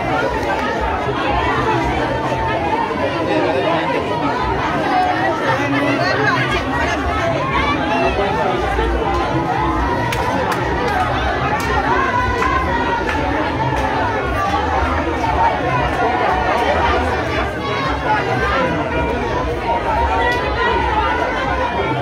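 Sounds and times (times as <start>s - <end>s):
crowd chattering: 0.0s - 22.0s.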